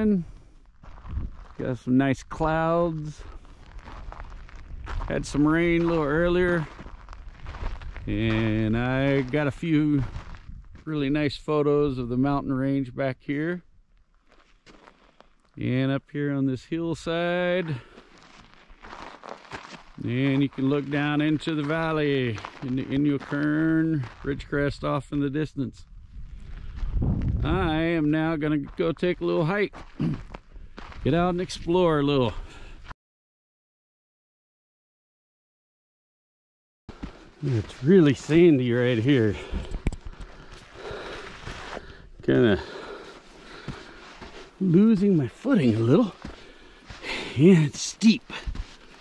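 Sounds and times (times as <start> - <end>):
feet scuffing on sandy ground: 0.2 - 1.8, 3.0 - 11.0, 14.2 - 15.5, 17.6 - 24.4, 28.4 - 32.6, 36.9 - 49.0
person breathing: 32.4 - 32.9, 39.3 - 44.6, 46.2 - 47.4.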